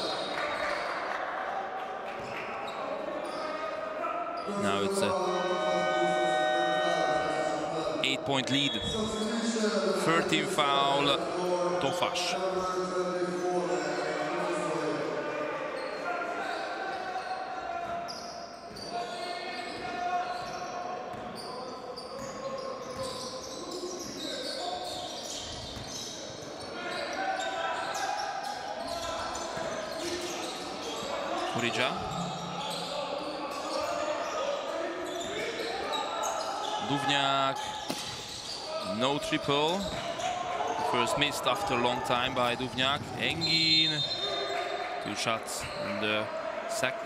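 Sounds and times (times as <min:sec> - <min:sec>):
voices calling out: 0:02.7 - 0:15.0.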